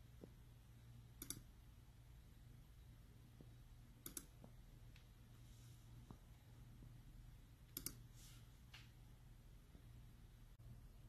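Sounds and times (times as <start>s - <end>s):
faint low hum: 0.0s - 11.0s
computer mouse button clicks: 1.2s - 1.4s, 4.0s - 4.3s, 7.7s - 8.0s.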